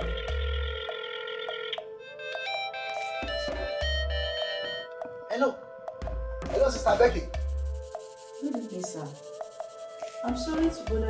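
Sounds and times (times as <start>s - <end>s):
mobile phone ringing: 0.0s - 4.8s.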